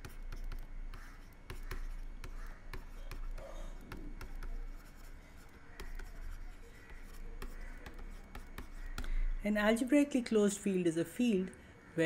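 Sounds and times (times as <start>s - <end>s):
stylus scratching on screen: 0.0s - 9.1s.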